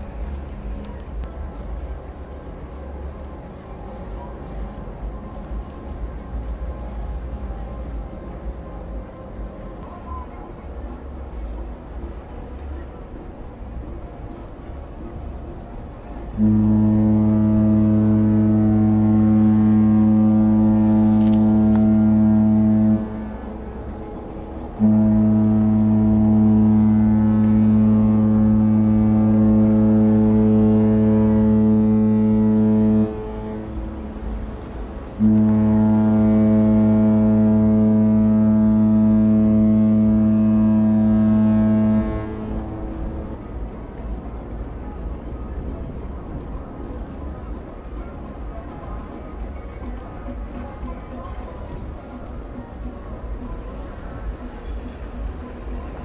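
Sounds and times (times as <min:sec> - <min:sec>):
ship horn deep blasts: 0:11.2 - 0:56.0.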